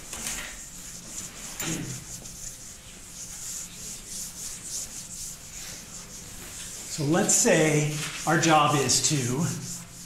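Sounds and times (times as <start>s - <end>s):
eraser wiping whiteboard: 0.0s - 10.0s.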